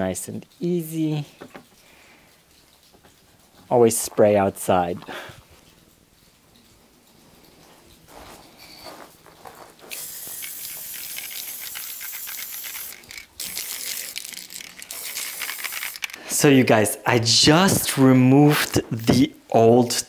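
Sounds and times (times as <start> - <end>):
spray can ball rattling: 7.9 - 16.5
spray paint hissing: 9.9 - 16.2.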